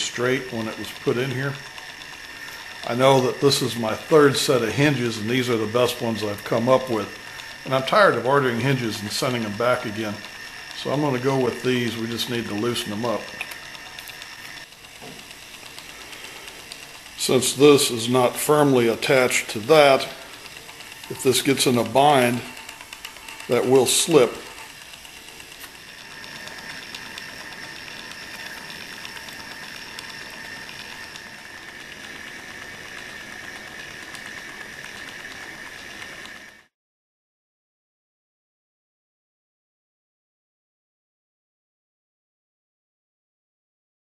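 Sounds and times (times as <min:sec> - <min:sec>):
room noise hiss: 0:00.0 - 0:36.7
thin high whine: 0:00.0 - 0:36.7
faint ticks: 0:00.1 - 0:36.6.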